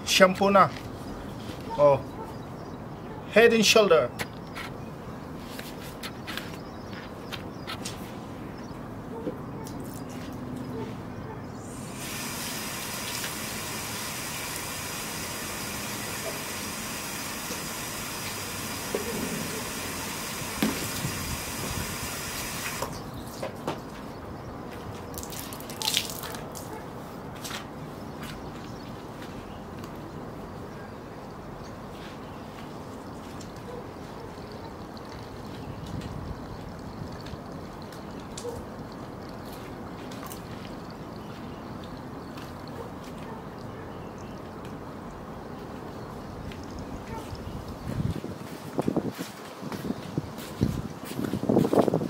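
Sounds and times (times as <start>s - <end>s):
water running: 11.7s - 23.0s.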